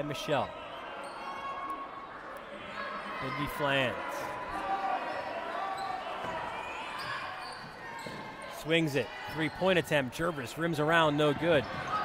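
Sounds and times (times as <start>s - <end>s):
murmur of crowd and voices: 0.0s - 12.0s.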